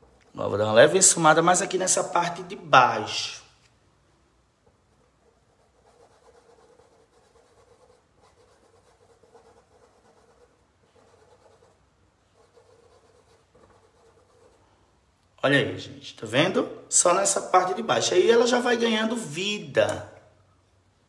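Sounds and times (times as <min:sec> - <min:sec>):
paintbrush rubbing on cloth: 0:04.7 - 0:14.8.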